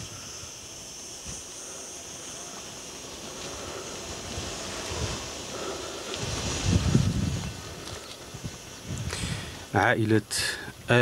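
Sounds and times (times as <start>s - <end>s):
wind buffeting microphone: 4.0s - 9.8s.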